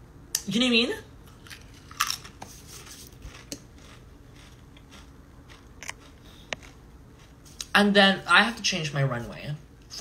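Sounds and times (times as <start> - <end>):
chewing crunches: 1.3 - 7.7
crunchy chip bite: 1.4 - 7.4.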